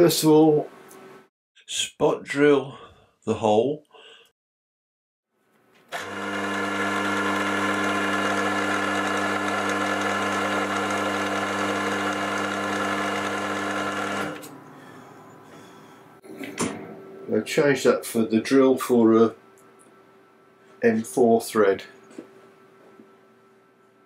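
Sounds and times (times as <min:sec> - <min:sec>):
milling machine spindle humming: 0:06.0 - 0:15.6.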